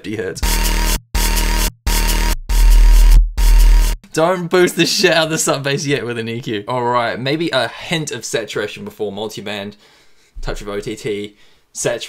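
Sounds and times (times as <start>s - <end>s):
dubstep with heavy sub bass: 0.4s - 4.0s.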